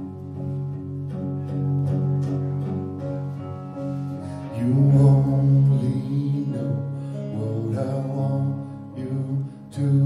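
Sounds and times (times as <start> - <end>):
electric guitar sustained notes: 0.0 - 10.0
keyboard sustained notes: 0.0 - 10.0.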